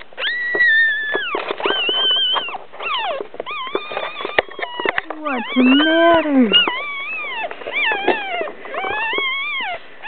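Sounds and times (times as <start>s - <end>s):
puppies crying: 0.0s - 10.0s.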